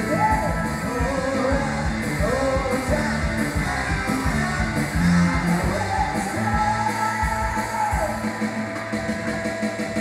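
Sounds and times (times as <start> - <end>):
person singing: 0.0 - 8.5
rock band playing: 0.0 - 10.0
sustained guitar and keyboard: 0.0 - 10.0.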